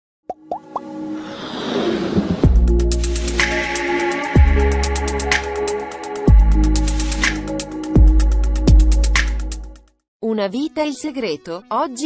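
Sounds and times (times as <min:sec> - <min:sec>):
musical build: 0:00.8 - 0:07.6.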